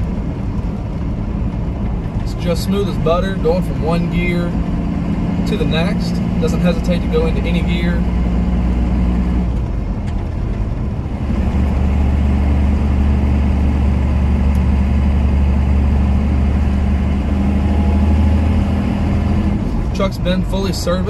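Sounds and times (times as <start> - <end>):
diesel engine running: 0.0 - 21.0
gear shifting: 0.0 - 21.0.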